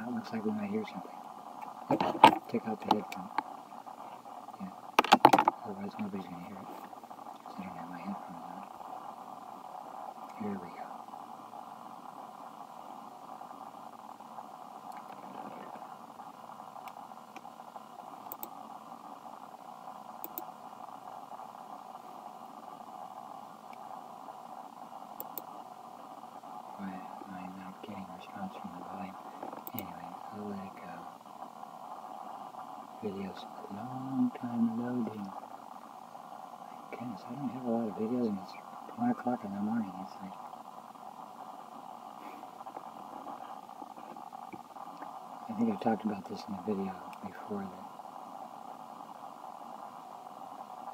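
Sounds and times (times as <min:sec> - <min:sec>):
voice: 0:00.0 - 0:01.2, 0:01.9 - 0:03.4, 0:04.5 - 0:04.8, 0:05.5 - 0:08.7, 0:10.3 - 0:11.0, 0:26.8 - 0:31.1, 0:33.0 - 0:35.4, 0:36.7 - 0:40.4, 0:45.5 - 0:47.9.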